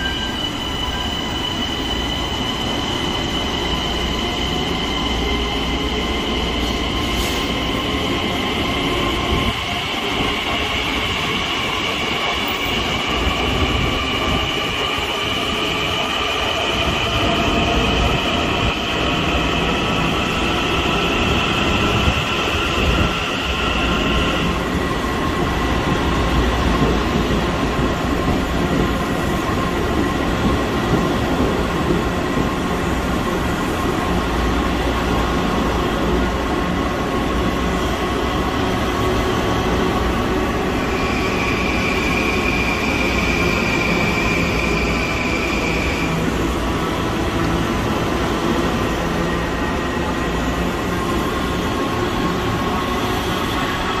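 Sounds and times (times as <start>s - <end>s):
electric train rumbling: 0.0s - 54.0s.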